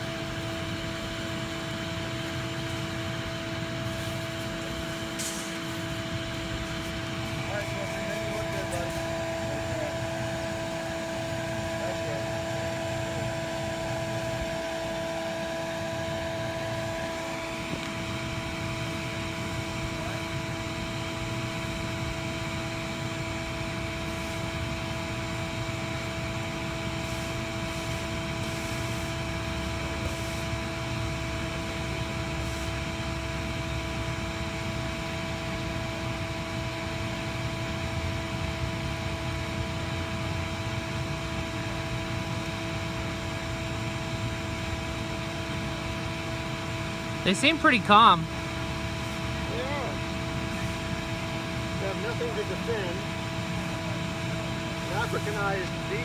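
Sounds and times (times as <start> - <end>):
vacuum motor whining: 0.0 - 56.0.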